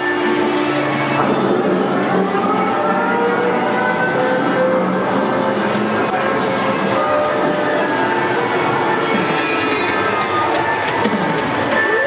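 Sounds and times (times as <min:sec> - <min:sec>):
faint soundtrack music: 0:00.0 - 0:12.0
ride car rumbling along track: 0:00.0 - 0:12.0.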